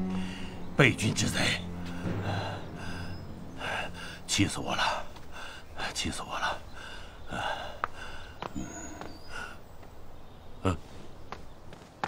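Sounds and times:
elderly man panting heavily: 5.1s - 9.7s.

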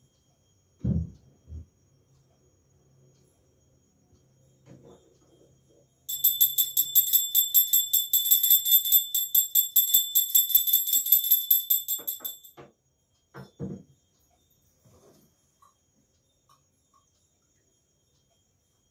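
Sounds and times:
hand bell ringing rapidly: 6.1s - 12.5s.

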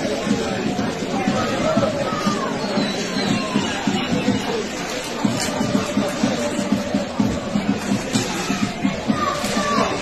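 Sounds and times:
crowd chanting: 0.0s - 10.0s
drum beaten steadily: 0.0s - 10.0s.

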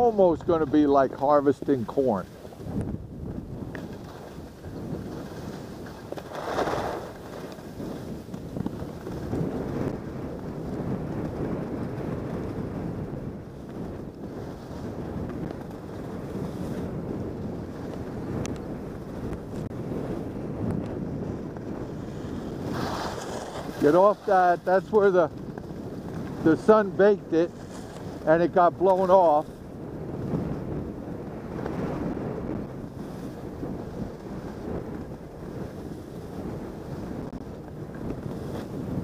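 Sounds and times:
skis sliding on snow: 0.0s - 39.0s
wind rushing over microphone: 0.0s - 39.0s.

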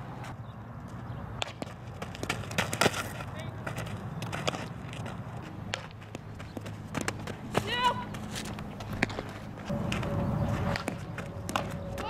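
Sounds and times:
footsteps on dirt: 0.2s - 12.0s.

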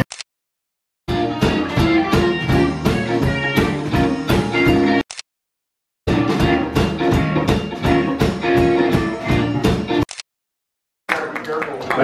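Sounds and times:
drum kit beat: 1.1s - 5.0s, 6.1s - 10.1s
electric guitars: 1.1s - 5.0s, 6.1s - 10.0s.

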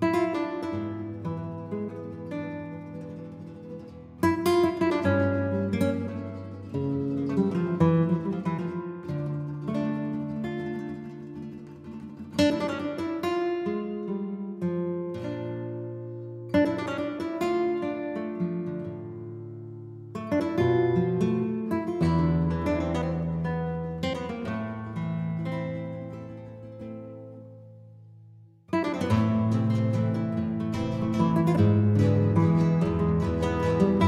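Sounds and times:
flamenco acoustic guitar: 0.0s - 34.0s.

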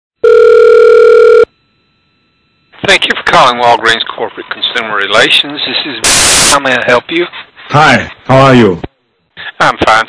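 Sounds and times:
telephone ringing tone: 0.2s - 1.6s.

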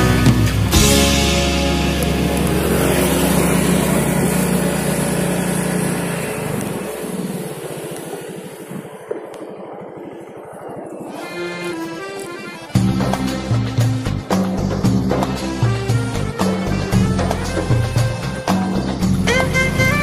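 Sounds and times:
guitar rock music: 0.0s - 6.2s, 11.2s - 20.0s
motorcycle engine running slowly: 0.0s - 9.6s.

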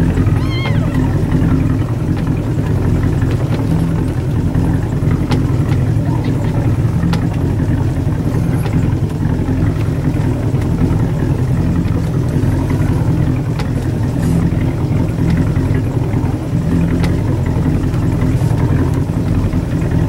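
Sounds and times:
boat engine running: 0.0s - 20.0s.

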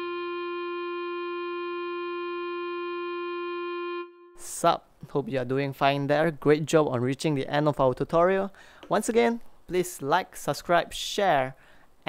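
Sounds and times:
clarinet holding long note: 0.0s - 4.4s.

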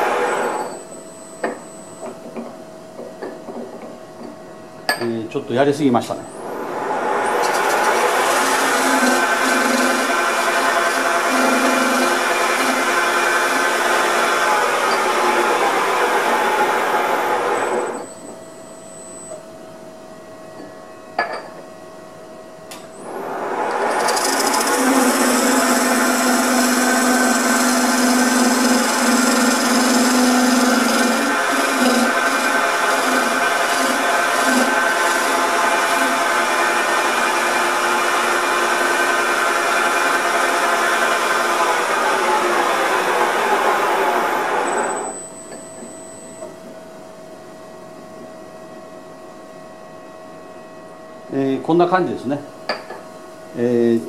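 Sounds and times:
chisel scraping wood on lathe: 7.4s - 17.8s, 23.8s - 44.9s.

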